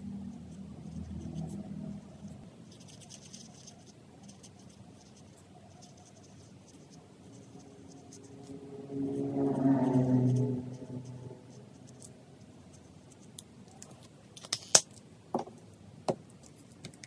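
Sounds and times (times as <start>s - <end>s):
marker scratching on paper: 2.2s - 8.6s
droning tone: 7.5s - 12.8s.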